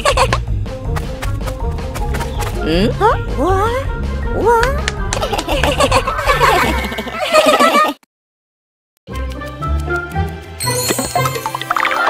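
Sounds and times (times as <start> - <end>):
cartoon voices laughing: 0.0 - 0.4, 5.2 - 8.0
background music: 0.0 - 7.2, 9.1 - 12.0.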